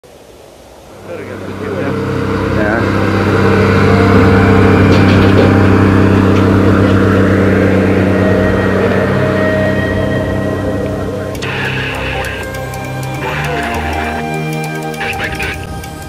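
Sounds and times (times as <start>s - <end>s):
large engine running: 0.9s - 16.0s.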